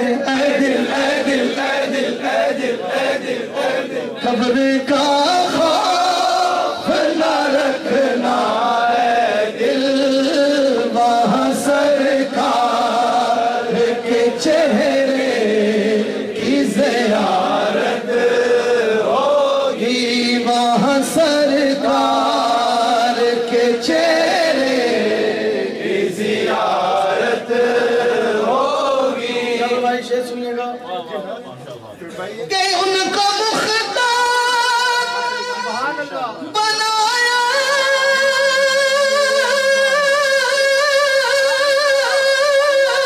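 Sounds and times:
man singing unaccompanied: 0.0 - 30.6, 32.4 - 43.0.

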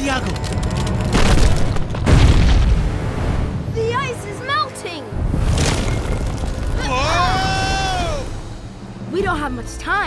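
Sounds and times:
cartoon ice cracking rumbles: 0.0 - 2.6, 5.4 - 7.2.

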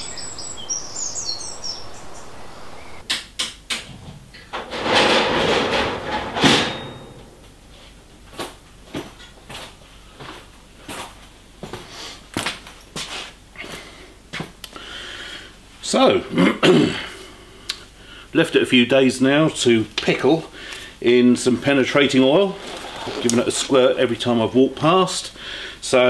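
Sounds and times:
bird chirps: 0.0 - 3.0
noisy rush: 0.0 - 3.0.

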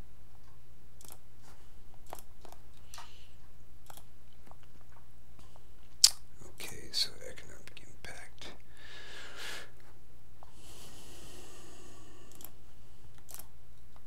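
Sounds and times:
low electrical hum: 0.0 - 14.0
mouth and breath noises: 8.7 - 13.1.

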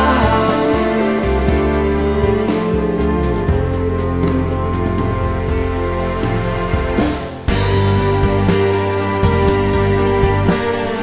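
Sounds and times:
progressive rock band with drums: 0.0 - 11.0.

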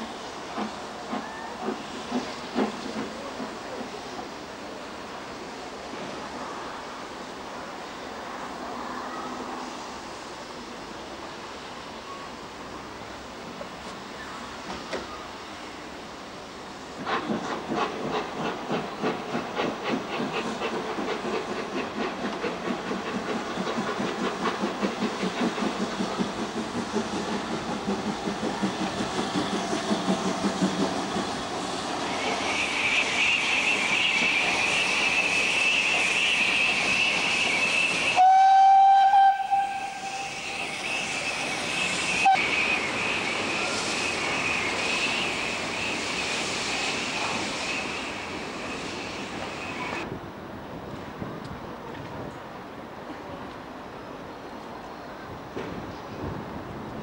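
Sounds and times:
steam locomotive exhaust beats: 0.0 - 4.3, 16.9 - 50.2
steam whistle: 32.0 - 46.2.

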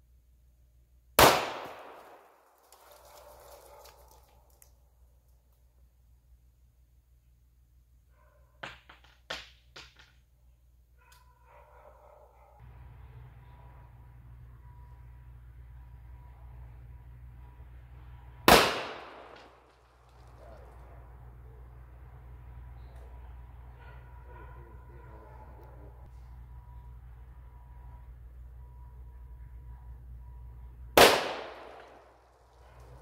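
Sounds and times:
revolver gunshot with echo: 1.2 - 2.2, 18.5 - 19.6, 31.0 - 32.1.

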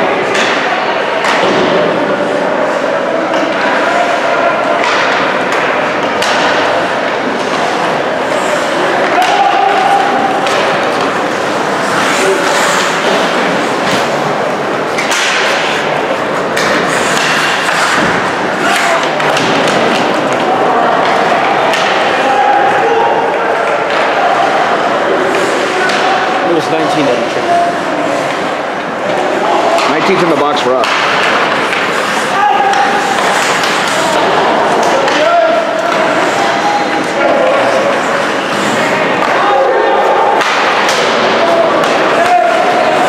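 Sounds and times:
noisy rink background: 0.0 - 43.0
sticks and puck hitting boards: 0.2 - 2.0, 3.3 - 22.7, 23.6 - 27.6, 29.1 - 43.0
voices shouting: 0.3 - 16.4, 17.2 - 30.1, 31.0 - 43.0.

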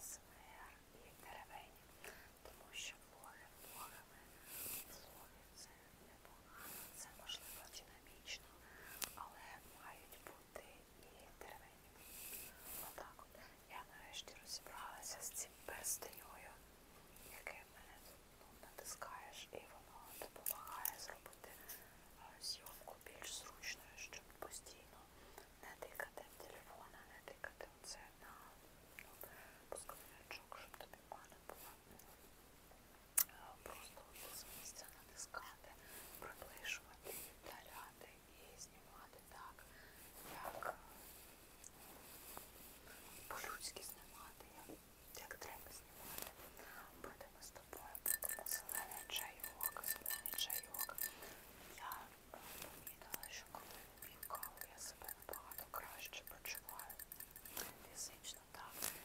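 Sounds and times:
woman whispering: 0.0 - 16.6, 17.2 - 32.2, 33.2 - 41.0, 42.9 - 59.0.

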